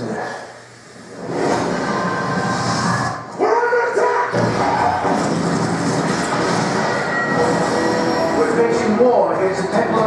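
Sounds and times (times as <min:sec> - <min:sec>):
action movie sound effects: 0:01.1 - 0:10.0.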